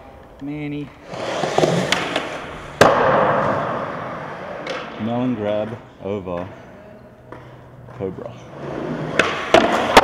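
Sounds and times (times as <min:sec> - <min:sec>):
skateboard wheels rolling on concrete: 0:00.0 - 0:06.4, 0:07.3 - 0:10.0
skateboard deck slap: 0:01.5 - 0:03.6, 0:09.1 - 0:10.0.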